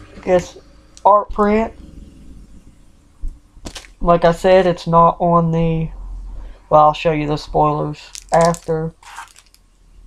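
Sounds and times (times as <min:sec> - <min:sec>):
faint low hum: 0:00.0 - 0:10.0
packaging crinkle: 0:03.7 - 0:04.0, 0:08.0 - 0:09.6.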